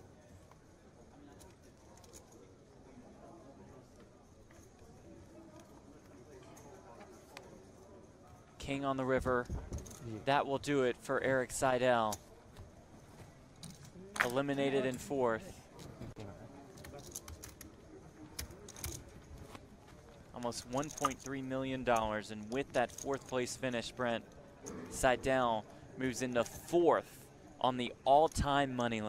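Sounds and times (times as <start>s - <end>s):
faint murmur of voices: 0.0s - 21.3s, 22.9s - 27.6s.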